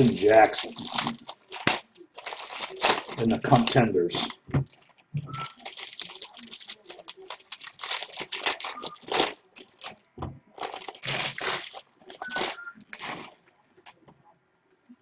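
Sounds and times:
foil wrappers tearing and crinkling: 0.0 - 10.0, 10.6 - 13.4.

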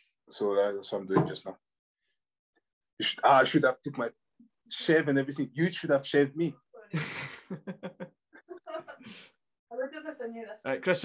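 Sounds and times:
person laughing: 6.9 - 9.1.

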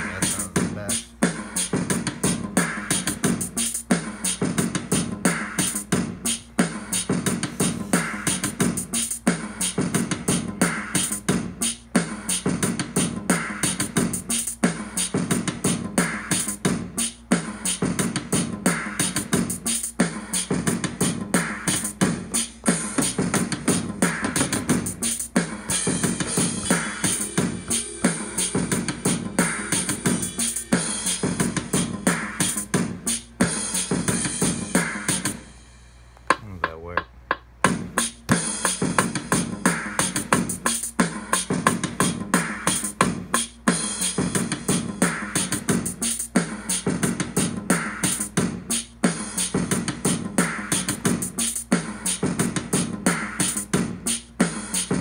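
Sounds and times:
drum machine beat: 0.0 - 35.5, 36.2 - 55.0.

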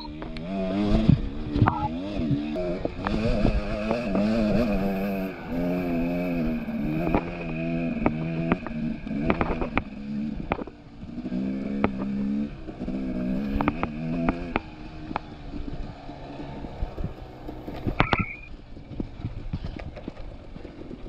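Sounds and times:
dirt bike engine revving: 0.0 - 19.5.

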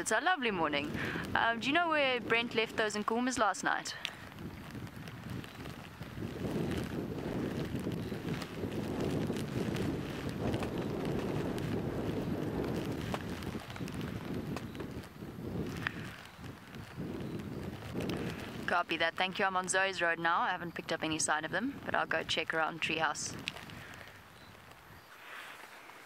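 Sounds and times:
storm wind gusting on microphone: 0.0 - 26.0.

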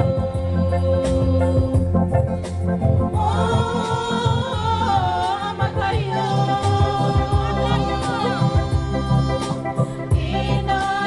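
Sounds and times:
electronic keyboard with bass line: 0.0 - 11.0
women's choir singing gospel: 3.1 - 11.0.

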